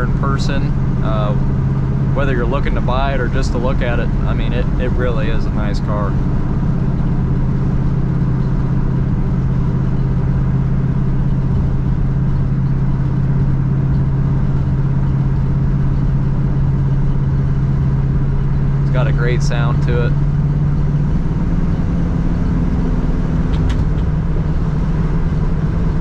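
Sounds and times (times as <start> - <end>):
car engine droning from inside cabin: 0.0 - 26.0.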